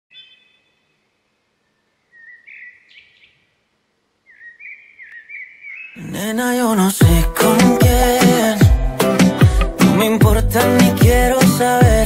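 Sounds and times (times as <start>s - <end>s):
faint bird chirping: 0.1s - 6.2s.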